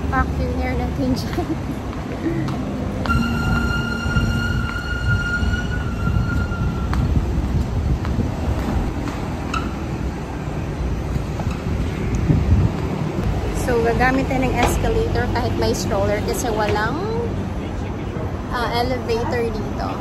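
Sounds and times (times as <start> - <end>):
escalator rumbling: 0.0 - 20.0
high-pitched whine: 3.0 - 8.5.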